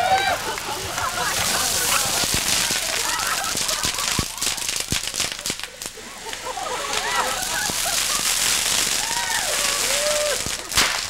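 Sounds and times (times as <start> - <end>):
people laughing and hooting: 0.0 - 10.9
fireworks hissing and popping: 0.0 - 11.0.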